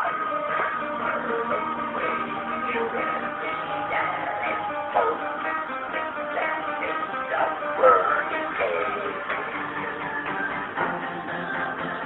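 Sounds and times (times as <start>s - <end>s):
guitar music: 0.0s - 12.0s
person singing: 0.0s - 12.0s.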